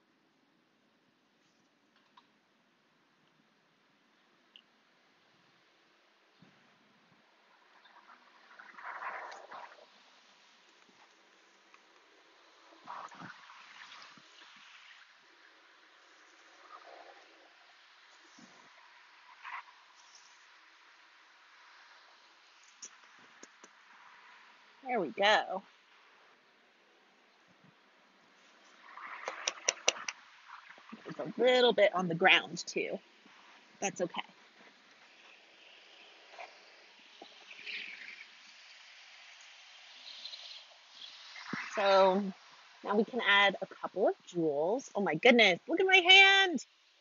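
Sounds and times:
sharp clicks: 29.2s - 30.2s.

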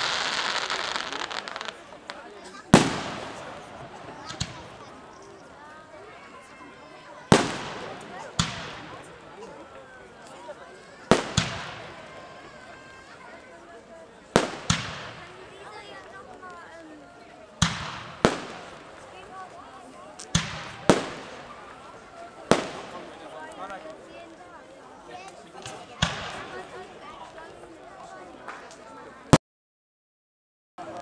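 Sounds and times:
faint firework crack: 0.0s - 5.6s, 7.2s - 9.3s, 10.2s - 12.9s, 14.3s - 16.9s, 17.5s - 24.4s, 25.2s - 29.4s
spectators talking: 0.0s - 29.4s, 30.8s - 31.0s.

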